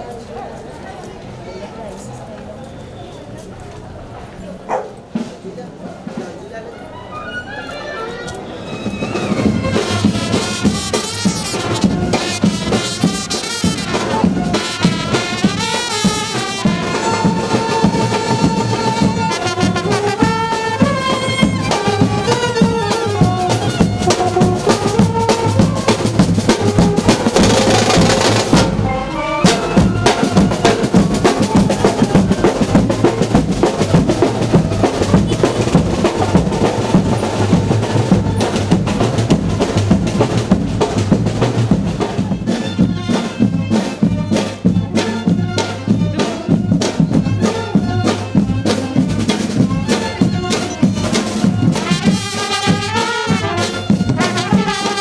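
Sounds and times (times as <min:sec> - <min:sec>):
marching brass band playing: 0:06.7 - 0:55.0.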